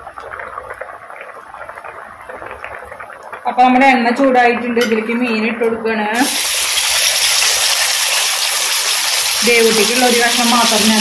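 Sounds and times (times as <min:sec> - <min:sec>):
fish sizzling in hot oil: 0:06.2 - 0:11.0.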